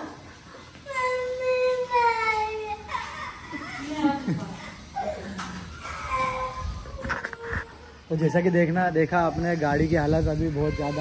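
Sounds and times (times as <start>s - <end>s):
small child crying: 5.0s - 8.4s, 10.4s - 11.0s.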